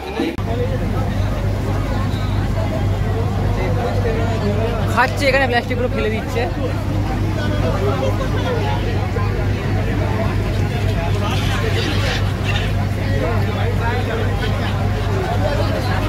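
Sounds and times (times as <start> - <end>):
babble of passengers' voices: 0.0 - 16.0
ferry engine droning: 0.0 - 16.0.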